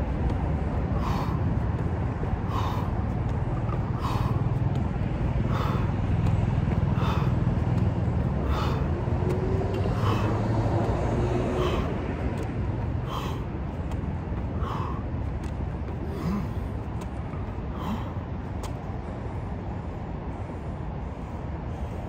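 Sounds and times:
man breathing hard: 0.0 - 22.0
steady low rumble: 0.0 - 22.0.

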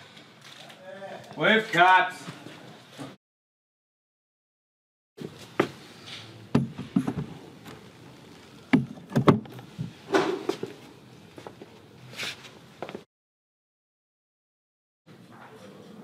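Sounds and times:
sharp knocks and clattering thuds: 6.5 - 7.4, 8.7 - 10.7.

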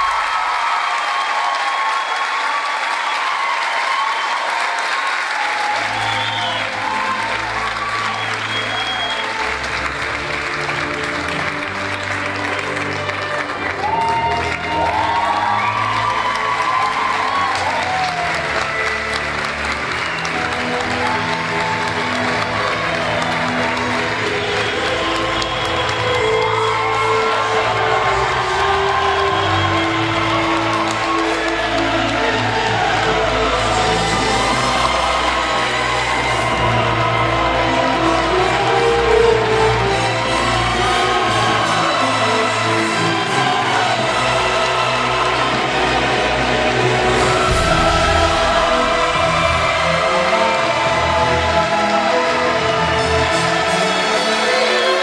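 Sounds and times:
audience applauding and cheering: 0.0 - 55.0
music playing: 4.3 - 55.0.

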